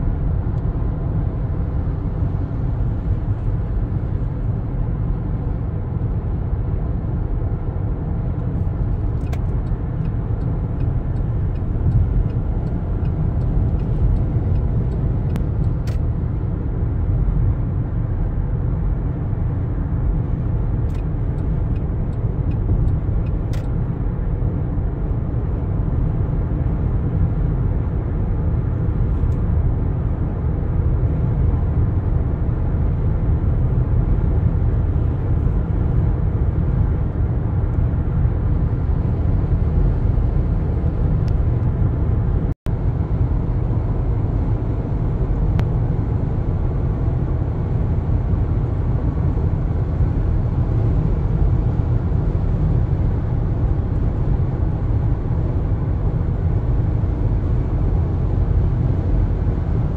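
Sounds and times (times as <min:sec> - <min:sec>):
car cabin road noise: 0:00.0 - 0:59.9.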